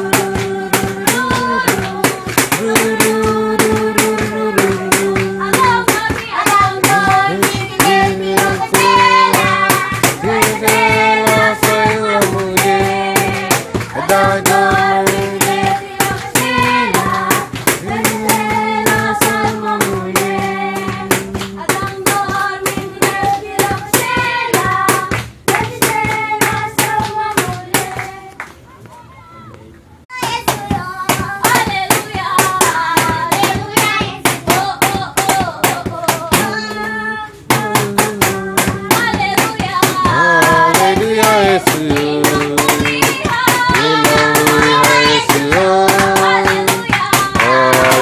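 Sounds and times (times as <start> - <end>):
rhythmic hand clapping: 0.0 - 28.7, 30.1 - 48.0
children singing: 38.9 - 48.0.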